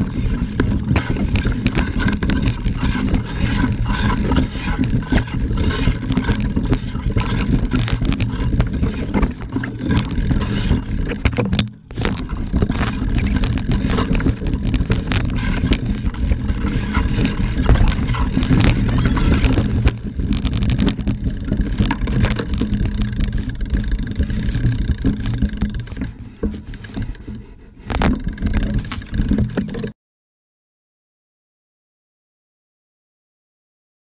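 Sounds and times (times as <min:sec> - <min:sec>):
bikes rattling: 0:00.0 - 0:29.9
low rumble: 0:11.8 - 0:26.1
wind on microphone: 0:11.9 - 0:23.4.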